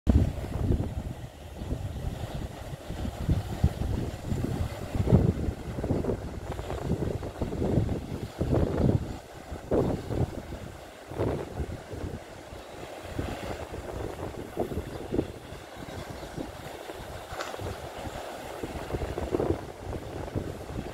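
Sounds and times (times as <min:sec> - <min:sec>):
wind buffeting microphone: 0:00.1 - 0:20.9
surf breaking: 0:01.6 - 0:20.9.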